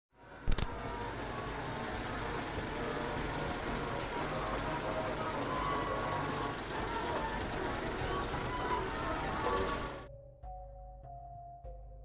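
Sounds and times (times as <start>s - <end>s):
film projector whirring: 0.5s - 10.1s.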